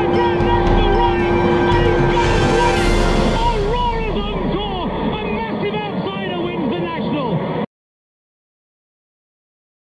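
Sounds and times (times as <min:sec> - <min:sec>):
person's voice: 0:00.0 - 0:07.4.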